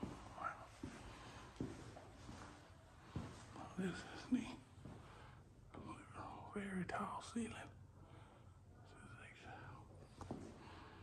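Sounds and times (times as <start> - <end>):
person whispering: 0.1 - 0.9, 3.5 - 4.6, 5.7 - 7.8, 8.8 - 9.9.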